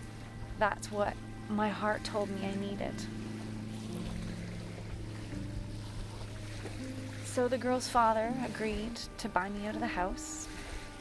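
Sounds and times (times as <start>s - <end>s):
soft background music: 0.0s - 11.0s
waves on the shore: 0.0s - 11.0s
wind: 0.0s - 11.0s.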